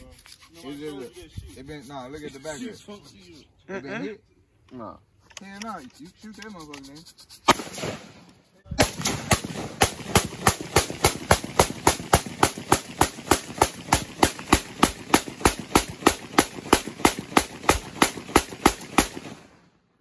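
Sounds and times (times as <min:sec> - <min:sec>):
rapid gunfire: 0:07.4 - 0:19.6.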